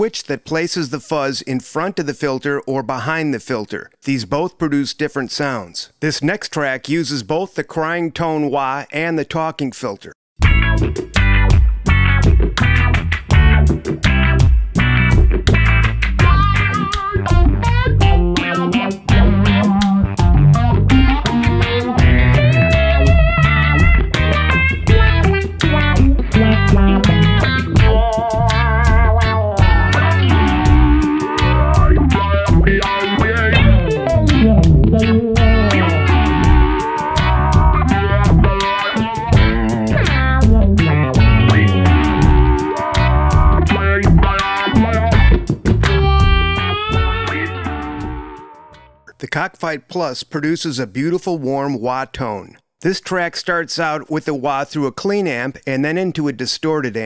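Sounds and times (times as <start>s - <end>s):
drums: 10.4s - 48.3s
bass guitar: 10.4s - 49.1s
electric guitar with wah effect: 10.4s - 49.1s.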